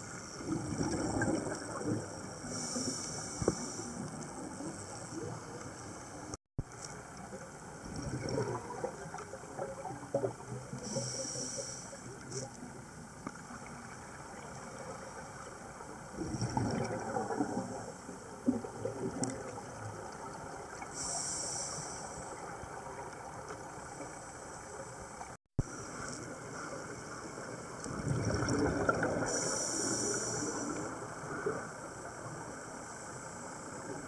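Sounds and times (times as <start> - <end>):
exhaled bubbles gurgling underwater: 0.0 - 6.4, 7.0 - 34.0
high hiss of inhalation: 2.5 - 4.1, 10.8 - 12.1, 21.0 - 22.4, 29.3 - 30.9.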